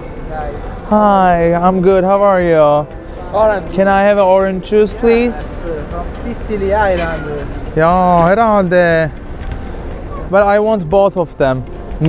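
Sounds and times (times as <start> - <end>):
low street noise: 0.0 - 12.0.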